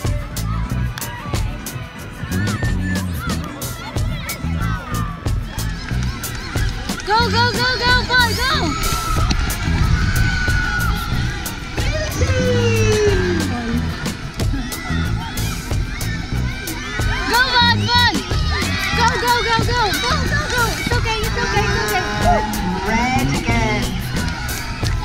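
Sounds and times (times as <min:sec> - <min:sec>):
upbeat background music: 0:00.0 - 0:25.0.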